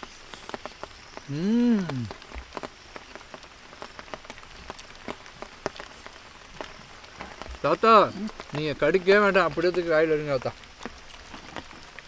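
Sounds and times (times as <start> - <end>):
person speaking: 1.3 - 2.1
people chewing and eating: 1.3 - 2.2.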